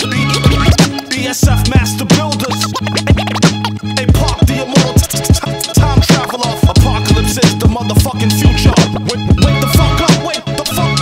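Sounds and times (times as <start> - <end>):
hip hop beat with bass and kick: 0.0 - 11.0
turntable scratching: 0.0 - 11.0.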